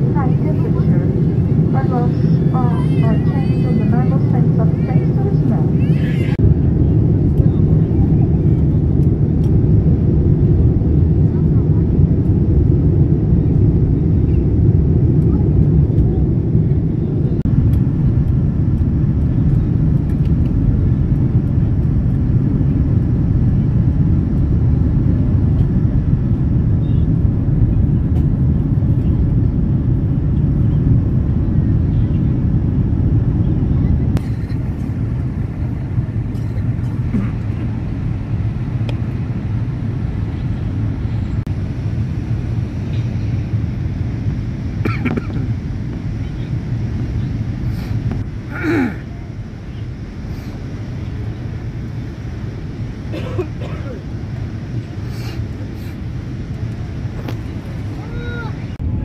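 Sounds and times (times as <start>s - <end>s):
jet engine cabin roar: 0.0s - 59.0s.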